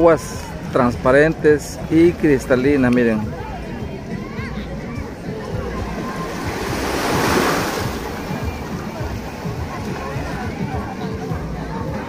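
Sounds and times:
small waves lapping on sand: 5.8 - 11.0.

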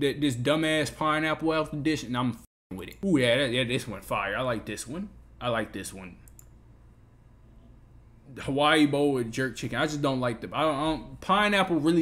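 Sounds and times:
computer mouse clicks: 6.2 - 6.6.

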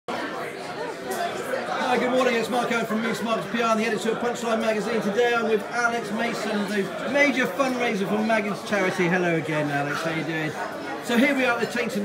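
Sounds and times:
background chatter of people: 0.1 - 12.0.

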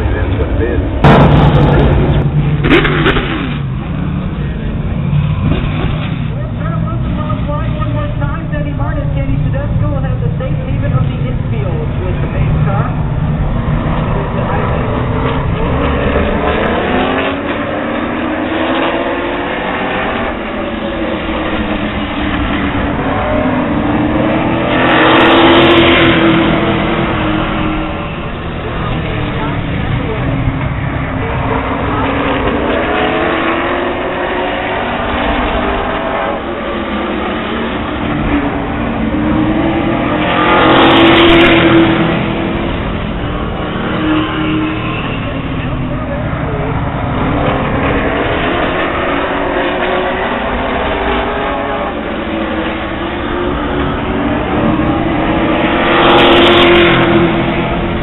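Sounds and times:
race car engines circling a track: 0.0 - 58.0.

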